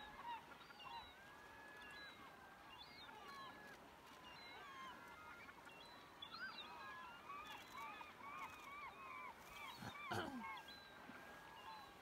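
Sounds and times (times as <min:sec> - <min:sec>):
flock of birds calling: 0:06.6 - 0:12.0.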